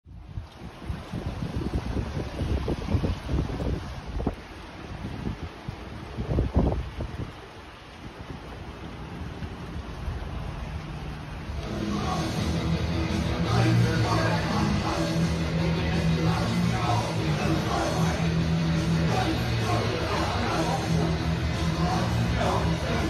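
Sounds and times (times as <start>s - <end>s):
wind buffeting microphone: 0.1s - 11.7s
music: 11.6s - 23.0s.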